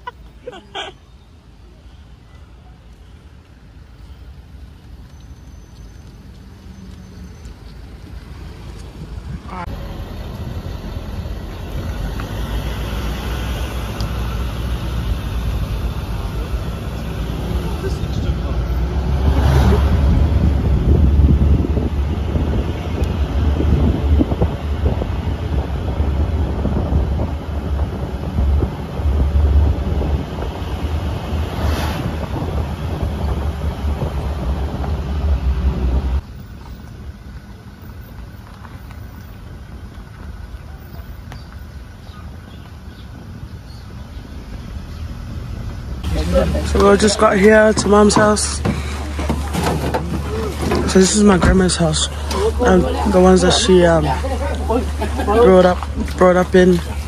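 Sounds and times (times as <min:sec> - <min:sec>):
car road noise rumble: 0:00.0 - 0:57.0
wind buffeting microphone: 0:13.9 - 0:36.5.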